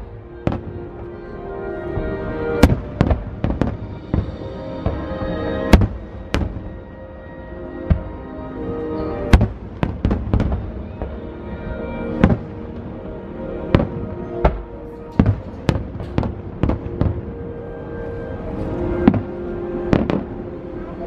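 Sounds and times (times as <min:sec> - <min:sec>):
music playing: 0:00.0 - 0:21.0
fireworks bursting with sharp bangs: 0:00.4 - 0:00.9, 0:02.0 - 0:06.8, 0:07.8 - 0:08.2, 0:09.3 - 0:11.3, 0:12.0 - 0:12.9, 0:13.7 - 0:17.4, 0:18.9 - 0:20.4.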